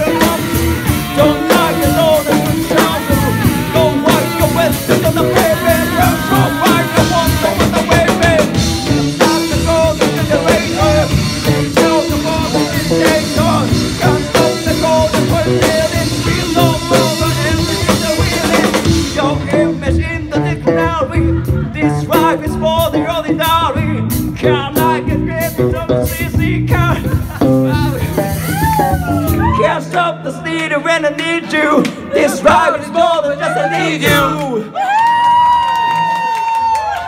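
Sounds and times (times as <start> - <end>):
live rock band playing: 0.0 - 29.6
man singing: 0.0 - 34.8.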